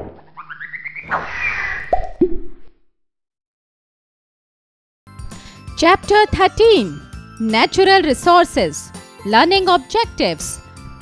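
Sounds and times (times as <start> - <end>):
cartoon swish: 0.3 - 2.7.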